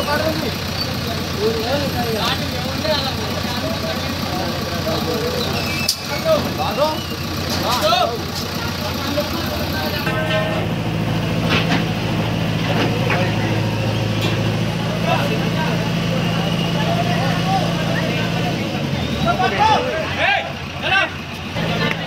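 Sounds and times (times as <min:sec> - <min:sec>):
diesel engine running: 0:00.0 - 0:22.0
onlookers' voices: 0:00.0 - 0:22.0.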